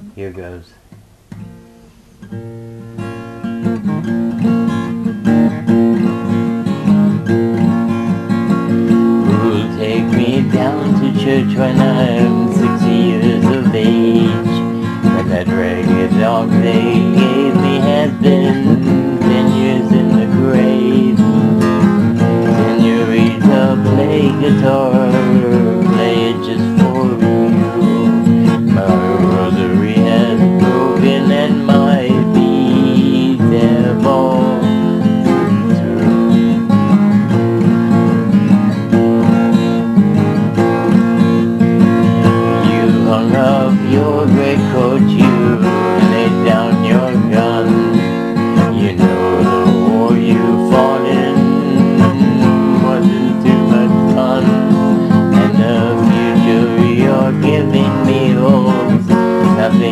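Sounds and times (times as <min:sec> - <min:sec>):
acoustic guitar strummed and picked: 0:00.0 - 0:59.9.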